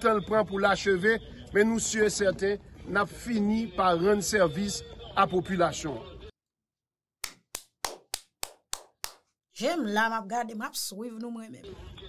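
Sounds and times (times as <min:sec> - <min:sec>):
person clapping slowly: 0:07.2 - 0:09.3.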